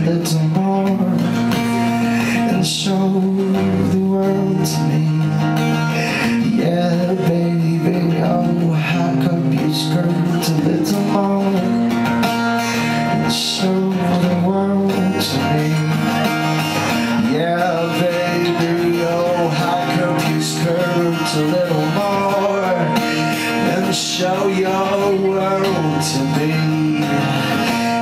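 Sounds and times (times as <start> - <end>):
acoustic guitar playing: 0.0 - 28.0
man singing into a microphone: 0.0 - 28.0.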